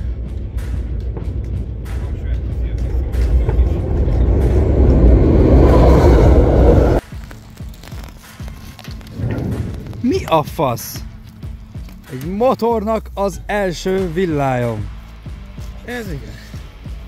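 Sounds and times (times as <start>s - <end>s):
low rumble: 0.0s - 8.1s, 9.0s - 11.4s
fireworks crackling and banging: 5.8s - 12.4s.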